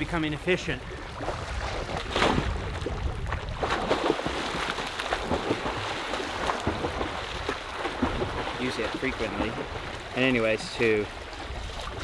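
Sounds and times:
water splashing from swimming: 0.7 - 12.0.

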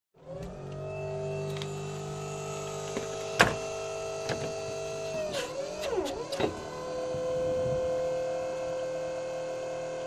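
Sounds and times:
electric motor whining: 0.2 - 10.0.

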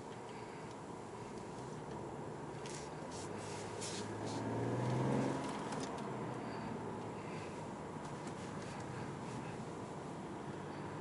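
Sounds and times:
car engine accelerating: 1.7 - 11.0.

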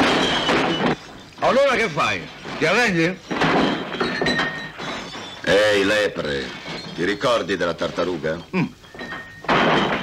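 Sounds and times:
furniture crashing and thudding: 0.0 - 1.8, 2.4 - 5.3, 9.3 - 10.0.

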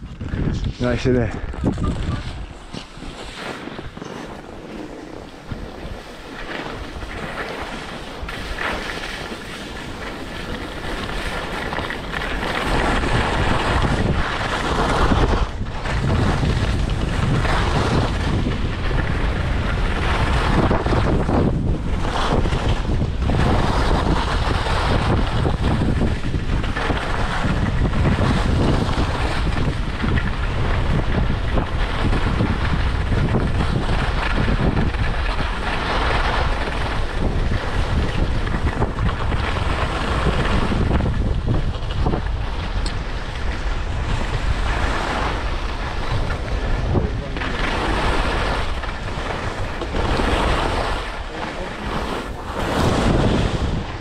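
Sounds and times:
skis scraping over snow: 0.0 - 54.0
wind buffeting microphone: 0.0 - 54.0.

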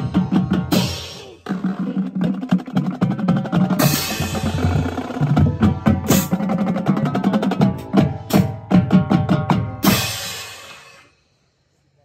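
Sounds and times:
marching drumline: 0.0 - 10.4.

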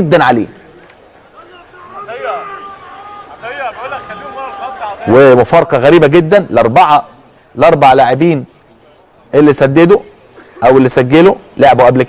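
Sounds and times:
tv commentary: 0.0 - 12.0
faint shouting voices: 0.5 - 6.1.

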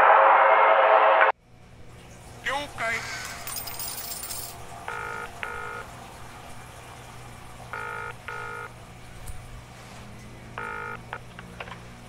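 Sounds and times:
low steady hum: 1.4 - 12.0
telephone ringback tone: 4.9 - 5.9, 7.7 - 8.7, 10.6 - 11.2.

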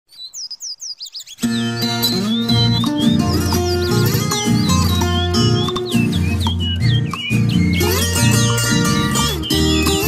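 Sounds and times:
birds chirping: 0.1 - 10.0
country song: 1.4 - 10.0.

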